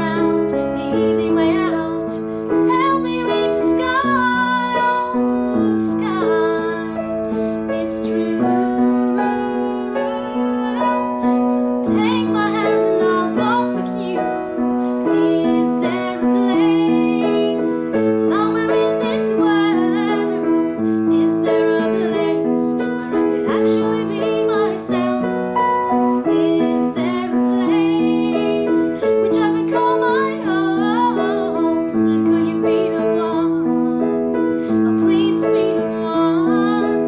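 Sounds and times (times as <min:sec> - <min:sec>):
piano chords: 0:00.0 - 0:37.0
woman singing: 0:00.0 - 0:37.0.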